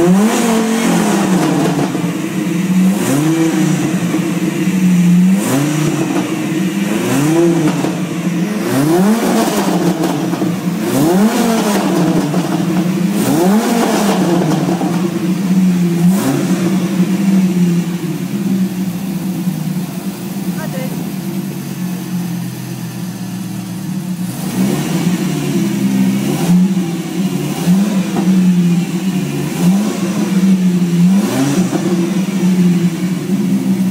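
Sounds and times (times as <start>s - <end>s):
engine idling with throttle blips: 0.0s - 33.9s.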